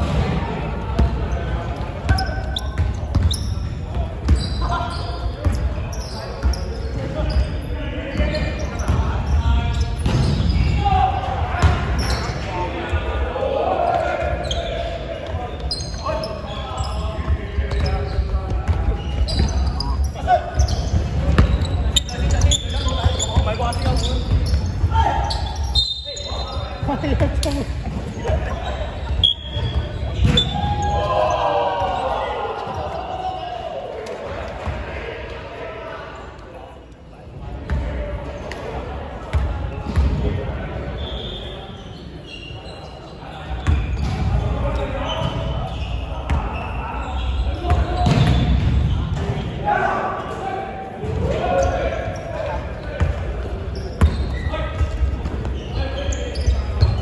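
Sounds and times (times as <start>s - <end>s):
players calling out: 0.0s - 36.5s
basketball bouncing on wooden court: 2.1s - 4.5s.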